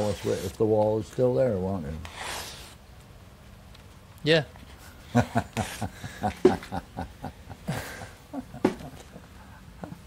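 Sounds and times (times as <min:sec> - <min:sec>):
man laughing: 0:05.1 - 0:10.0.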